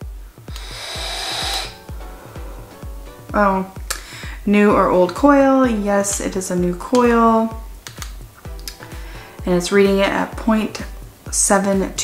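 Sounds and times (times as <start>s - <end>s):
background music with steady beat: 0.0s - 12.0s
vape hissing air draw: 0.5s - 1.8s.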